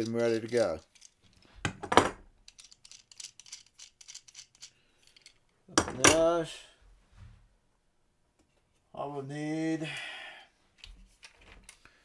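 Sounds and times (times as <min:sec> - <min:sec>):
metal clamps clinking and rattling: 0:00.0 - 0:06.3.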